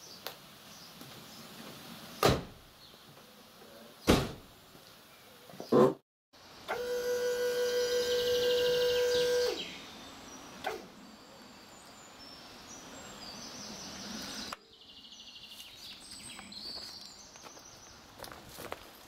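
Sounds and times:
birds chirping: 4.8s - 18.5s.

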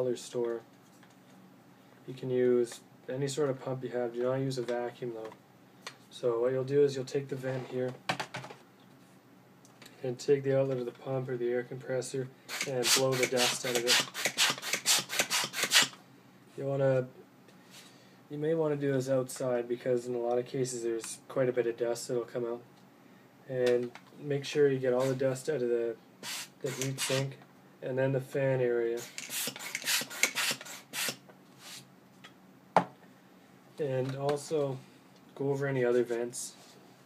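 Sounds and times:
hand pump puffs of air: 12.5s - 16.0s, 26.2s - 27.2s, 29.0s - 31.9s.

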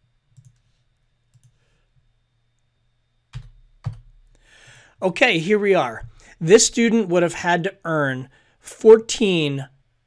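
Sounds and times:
computer mouse clicks: 0.3s - 1.6s
keyboard keystrokes: 3.3s - 4.1s.

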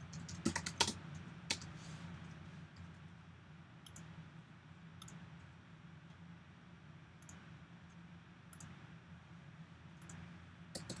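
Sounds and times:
laptop keyboard typing: 0.0s - 1.7s, 10.0s - 11.0s.

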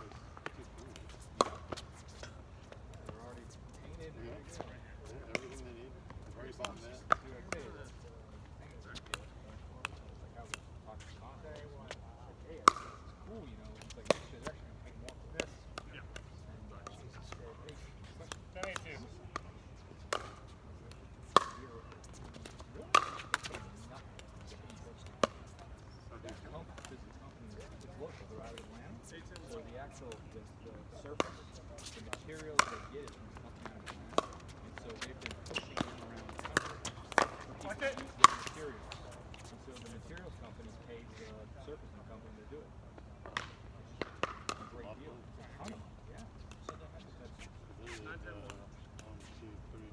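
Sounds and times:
paddles hitting plastic ball: 12.6s - 13.0s, 18.2s - 24.4s, 31.2s - 39.5s, 43.2s - 44.7s.

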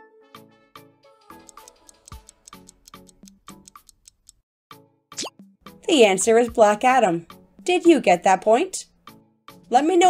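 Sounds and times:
plucked music over ticking beat: 1.3s - 4.4s.

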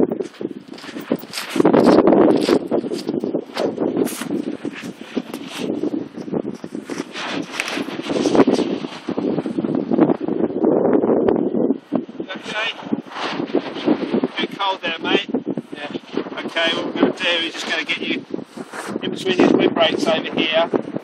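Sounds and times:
footsteps on sand: 0.0s - 9.7s, 15.6s - 19.0s
wind rumbling on microphone: 0.0s - 21.0s.

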